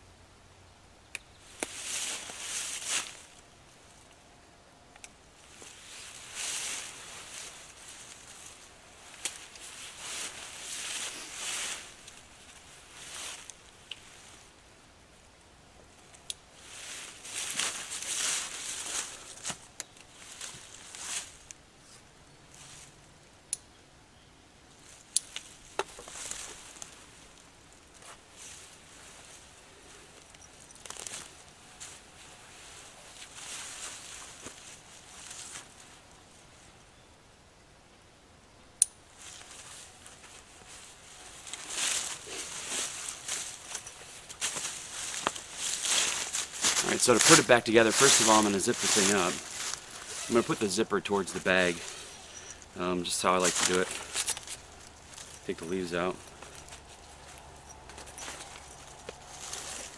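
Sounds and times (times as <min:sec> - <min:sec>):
footsteps in dry leaves: 0:01.5 - 0:03.4, 0:05.4 - 0:14.5, 0:16.6 - 0:21.5, 0:24.8 - 0:36.6, 0:39.1 - 0:59.9
nylon mesh net rustling: 0:30.2 - 0:36.1, 0:39.2 - 0:59.9.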